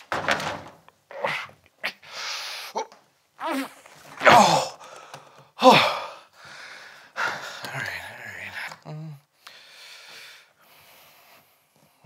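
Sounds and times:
man sighing: 4.2s - 9.6s.

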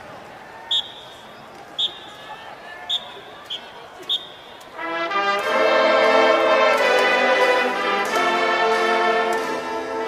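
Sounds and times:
faint crowd voices: 0.0s - 10.0s.

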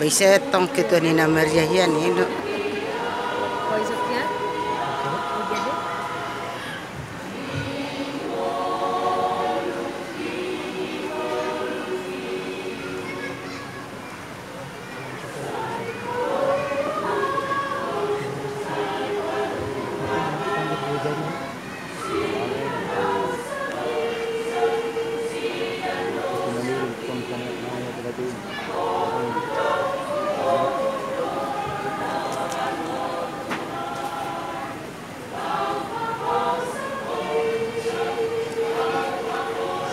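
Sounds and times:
choir singing held chords: 0.0s - 39.9s.

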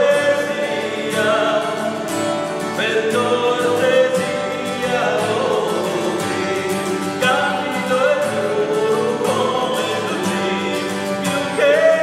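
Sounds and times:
acoustic guitars: 0.0s - 12.0s
person singing: 0.0s - 12.0s.

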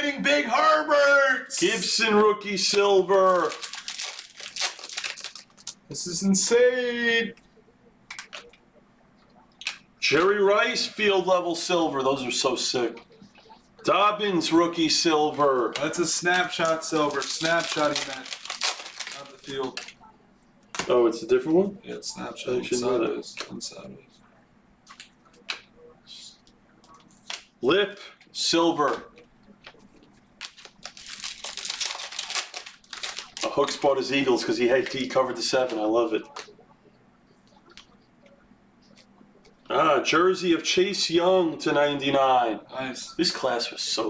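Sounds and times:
foil wrapper crinkling and tearing: 2.7s - 5.8s, 16.2s - 19.9s, 30.4s - 34.0s.

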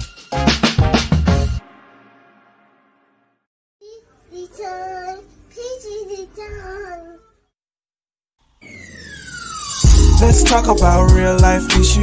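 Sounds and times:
falling tone sweep: 8.6s - 11.1s
high-pitched voice singing jingle: 8.6s - 12.0s
intro music: 8.6s - 12.0s.

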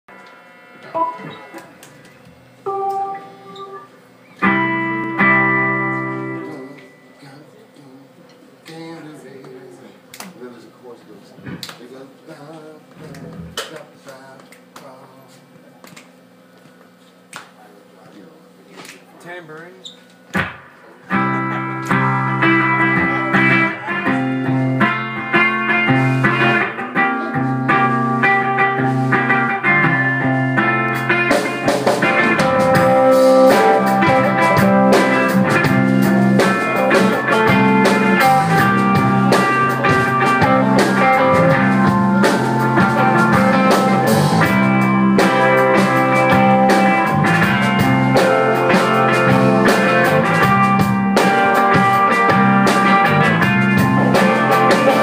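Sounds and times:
electric guitar: 0.1s - 8.9s, 12.6s - 13.8s, 20.4s - 55.0s
drums: 0.1s - 55.0s
live rock band playing: 0.8s - 7.2s, 20.4s - 55.0s.

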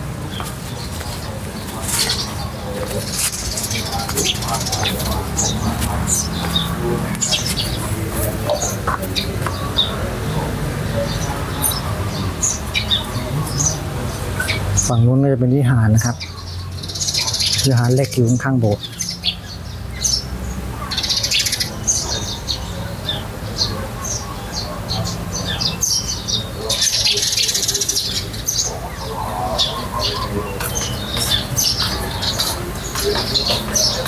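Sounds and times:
rapid high chattering: 0.0s - 15.0s, 20.6s - 34.0s
small birds chirping: 0.0s - 34.0s.

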